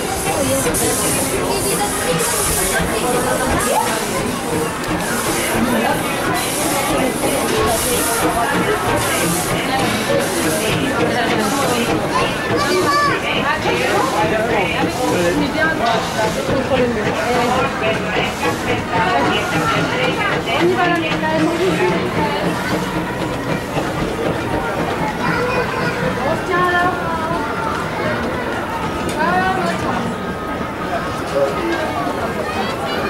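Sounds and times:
steam locomotive exhaust hissing: 0.0 - 27.1
people talking: 0.0 - 33.0
people's voices: 0.0 - 33.0
train wheels clacking on rails: 0.0 - 33.0.

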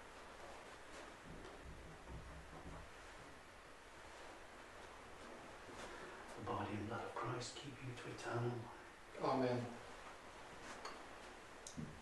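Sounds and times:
soft low knock on wood: 1.2 - 2.9.

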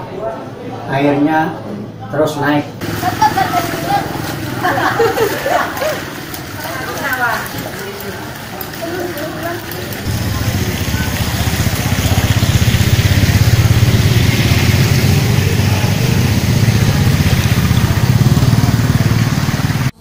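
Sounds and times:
motorcycle engine running: 2.8 - 20.0.

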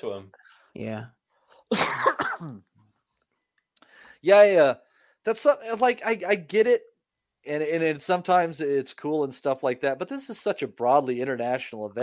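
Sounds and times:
person coughing: 1.7 - 2.7.

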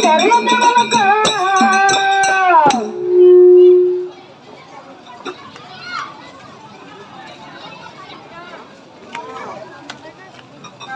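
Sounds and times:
folk singing: 0.0 - 3.0
sharp percussion strikes: 0.0 - 4.1
murmur of people talking: 0.0 - 10.9
loud low tone: 2.6 - 4.2.

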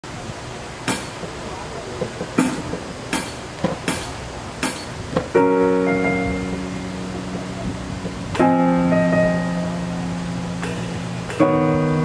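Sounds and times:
low murmuring voices: 0.0 - 12.0.

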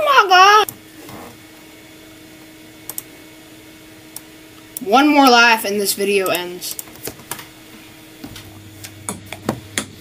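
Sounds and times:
low appliance hum: 0.0 - 10.0.

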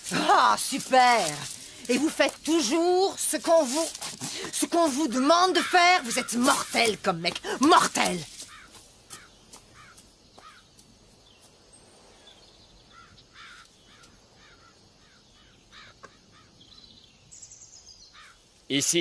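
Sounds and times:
birds calling: 0.0 - 18.5
faint background hiss: 0.0 - 19.0.

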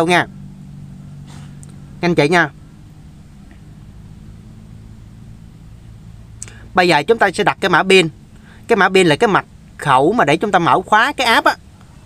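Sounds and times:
steady low hum: 0.0 - 12.0
faint hiss: 0.6 - 11.0.

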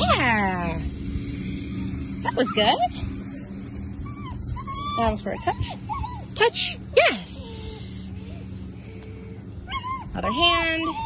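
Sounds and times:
low steady background hum: 0.0 - 11.0
dog whimpering: 2.1 - 3.0, 4.0 - 8.4, 9.7 - 11.0.

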